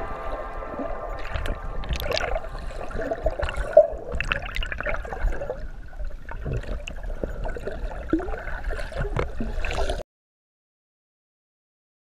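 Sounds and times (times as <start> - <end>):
underwater gurgling and sloshing: 0.0 - 10.0.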